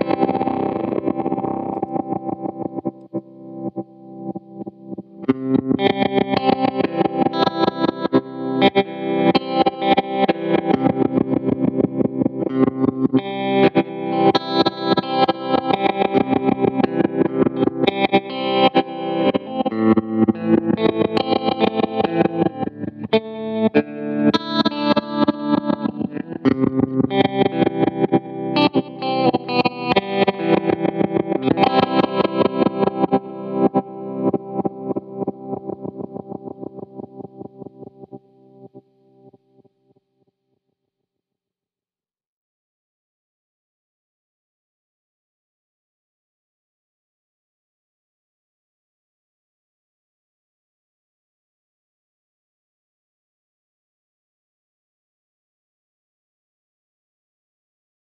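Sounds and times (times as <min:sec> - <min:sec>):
electric guitar with tremolo pulses: 0:00.0 - 0:40.0.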